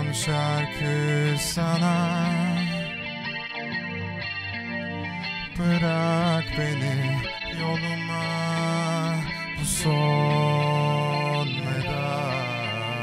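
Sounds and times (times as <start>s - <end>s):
electric guitar melody: 0.0s - 13.0s.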